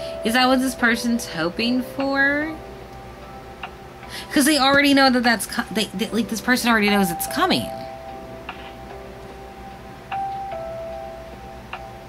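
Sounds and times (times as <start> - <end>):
slow bell-like music: 0.0 - 12.0.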